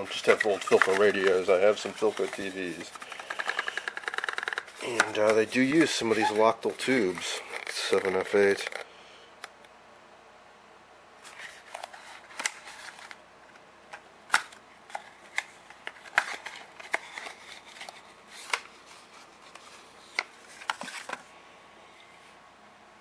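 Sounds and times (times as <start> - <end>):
thin cardboard rustling: 0.0 - 8.8.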